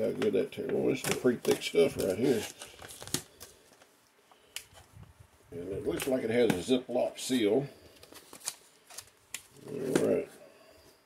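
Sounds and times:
foil bag crinkling: 0:00.9 - 0:03.8.

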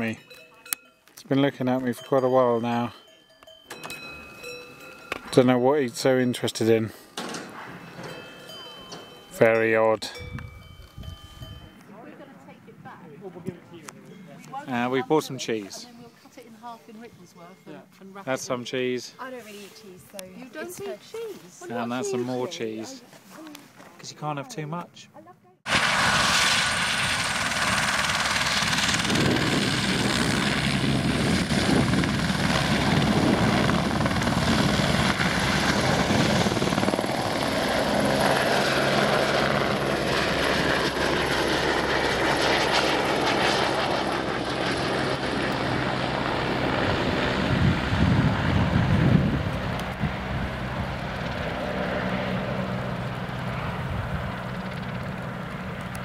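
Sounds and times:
helicopter rotor beat and whine: 0:20.4 - 0:22.8, 0:25.7 - 0:56.0.

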